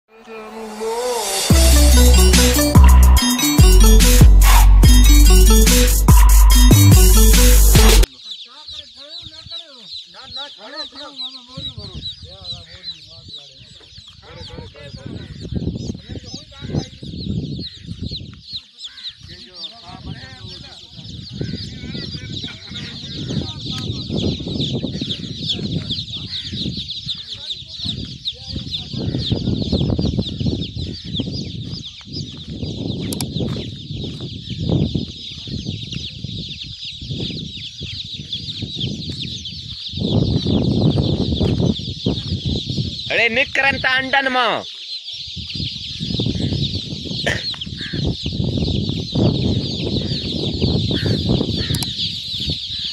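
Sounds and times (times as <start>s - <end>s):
chicks peeping: 0.1s - 52.9s.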